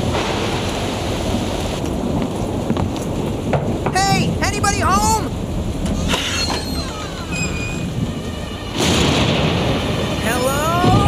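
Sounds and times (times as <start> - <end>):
burst of storm noise: 0.0 - 11.0
rain: 0.0 - 11.0
wind: 0.0 - 11.0
eerie background music: 5.3 - 11.0.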